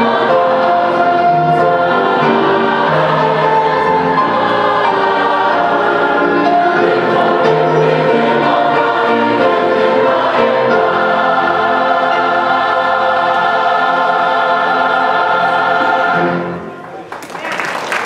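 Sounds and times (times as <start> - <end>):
church choir singing gospel: 0.0 - 16.8
applause: 16.8 - 18.0.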